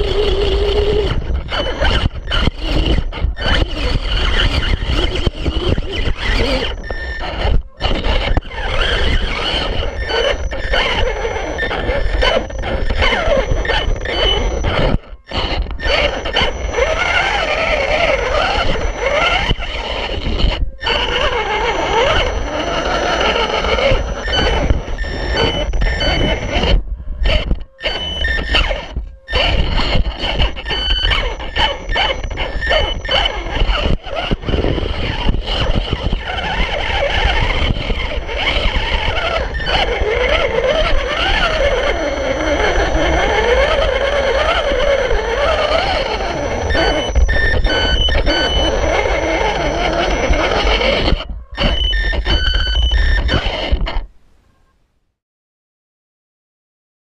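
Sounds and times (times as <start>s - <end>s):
electric motor and gears whining: 0.0s - 54.1s.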